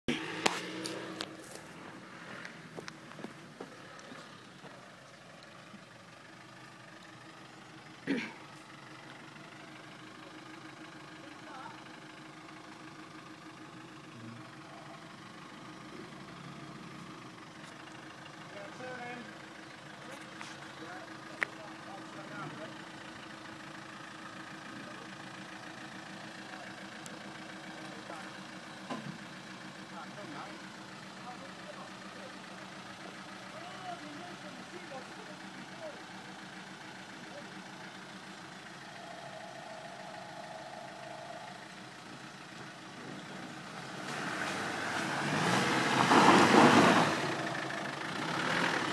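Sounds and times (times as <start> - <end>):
engine idling and revving: 0.0 - 48.9.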